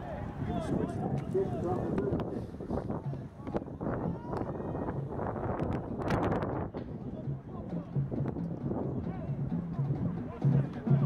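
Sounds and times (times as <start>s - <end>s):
crowd noise: 0.0s - 11.0s
wind buffeting microphone: 0.0s - 11.0s.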